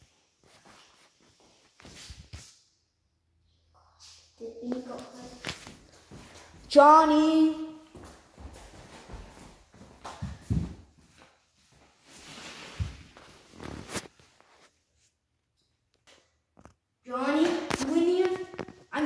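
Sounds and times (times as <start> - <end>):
soft footsteps: 0.0 - 2.5, 4.7 - 6.8, 7.8 - 15.2
child talking: 4.4 - 5.6, 6.7 - 7.9, 17.1 - 19.0.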